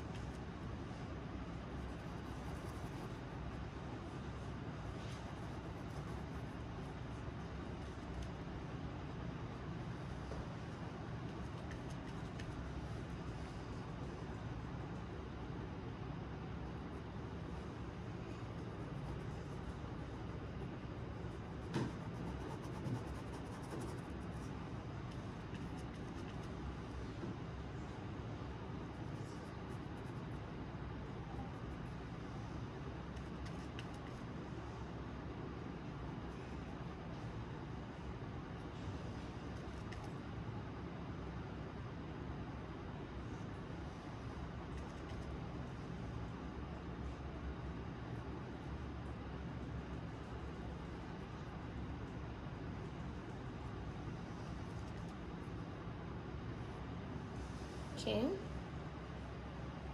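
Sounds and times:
steady low background noise: 0:00.0 - 0:59.9.

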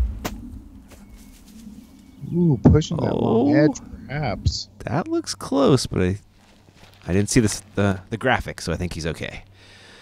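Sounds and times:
low rumble of flying disc: 0:00.0 - 0:04.8.

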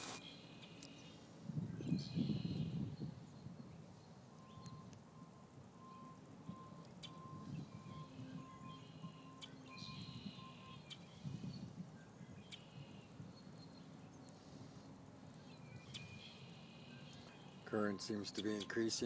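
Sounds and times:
distant electronic beep: 0:04.0 - 0:11.2, 0:15.8 - 0:19.0.

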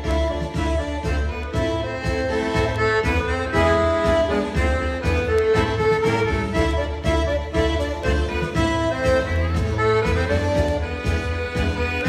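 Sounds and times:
accordion dance tune: 0:00.0 - 0:12.0
low bass beat: 0:00.0 - 0:12.0.

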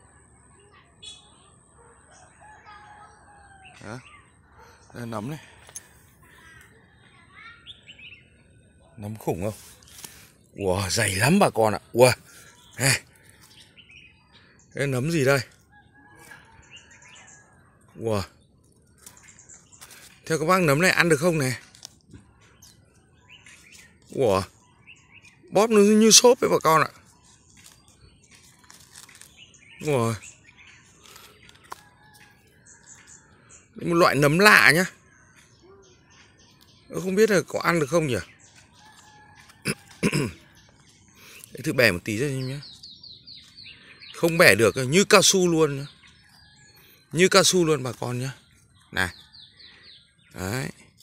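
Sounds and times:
faint bird chirps: 0:00.0 - 0:51.0
rooster crowing: 0:02.2 - 0:03.9.

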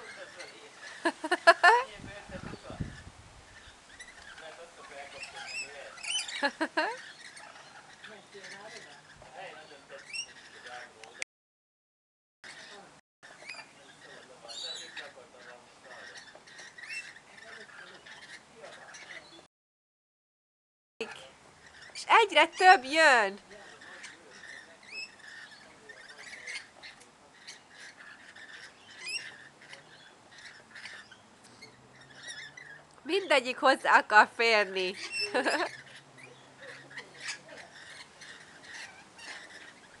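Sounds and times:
lorikeets chattering: 0:00.0 - 0:11.2, 0:12.4 - 0:19.5, 0:21.0 - 0:40.0.

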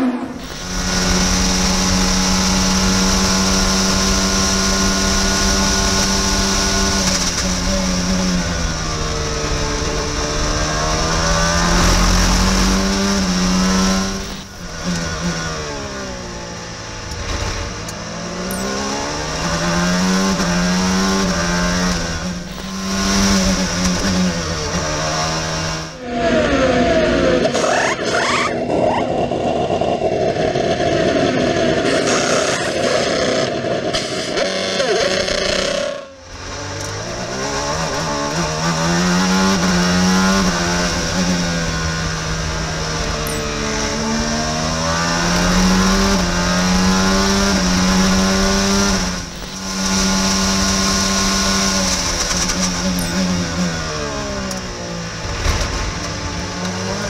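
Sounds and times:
race car engine at full throttle: 0:00.0 - 0:57.0.

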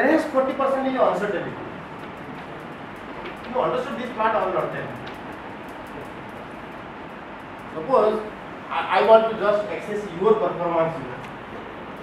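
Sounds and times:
steady hum and hiss: 0:00.0 - 0:12.0.

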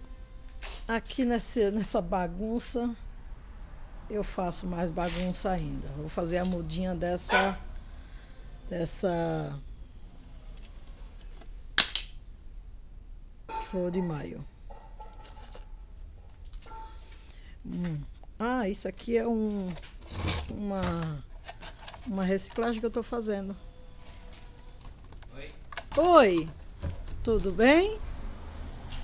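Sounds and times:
person speaking greeting: 0:13.7 - 0:14.5, 0:25.4 - 0:26.5
plastic bottle crackling: 0:24.2 - 0:27.8.

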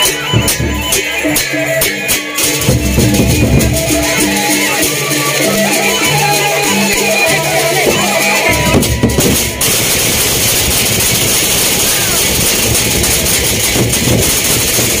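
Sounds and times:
melodic tune: 0:00.0 - 0:14.1
barrel drums beating: 0:00.0 - 0:15.0
crowd chatter: 0:00.0 - 0:15.0
metallic clashing: 0:07.8 - 0:15.0.

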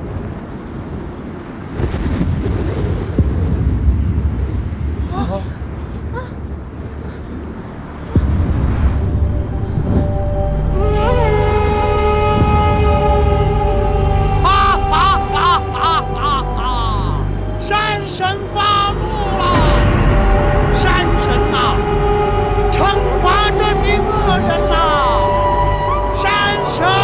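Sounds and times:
wind gusts with deep rumble: 0:00.0 - 0:27.0
sustained music: 0:03.8 - 0:27.0.

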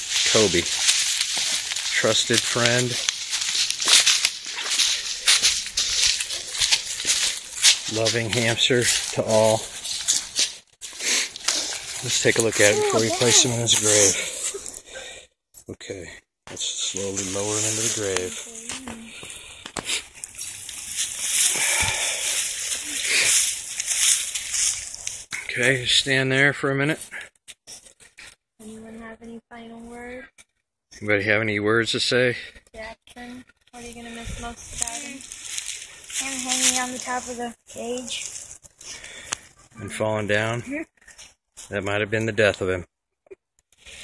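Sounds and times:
footsteps crunching dry leaves: 0:00.0 - 0:14.8, 0:16.9 - 0:25.3, 0:33.8 - 0:39.5.

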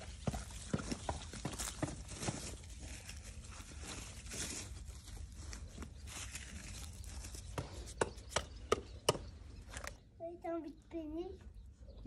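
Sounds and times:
crunching on dry garden soil: 0:00.0 - 0:10.0.

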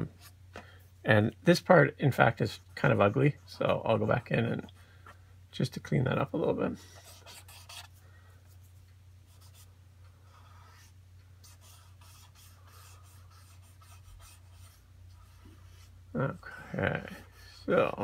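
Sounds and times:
low electrical hum: 0:00.0 - 0:18.0
pencil scratching on paper: 0:06.8 - 0:07.9, 0:09.3 - 0:09.7, 0:10.3 - 0:16.0.

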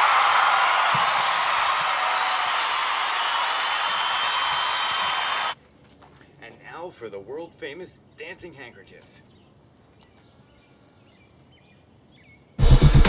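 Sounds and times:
audience applause and cheering: 0:00.0 - 0:05.6.

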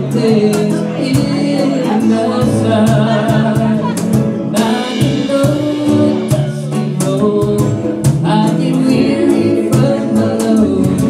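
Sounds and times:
drum and cymbal hits: 0:00.0 - 0:11.0
low bass notes: 0:00.0 - 0:11.0
strummed ukuleles and guitar: 0:00.0 - 0:11.0
voices singing in harmony: 0:00.0 - 0:11.0.

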